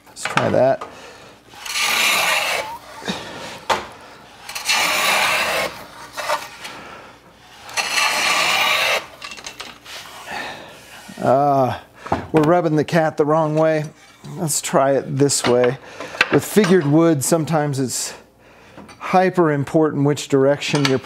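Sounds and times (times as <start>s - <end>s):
hand plane shaving wood: 1.5s - 6.7s, 7.5s - 9.2s.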